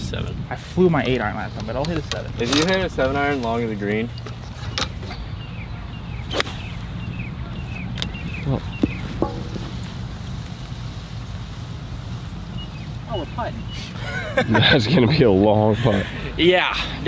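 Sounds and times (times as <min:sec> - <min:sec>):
golf club striking ball: 0:08.8 - 0:10.1
low hum: 0:08.9 - 0:11.9.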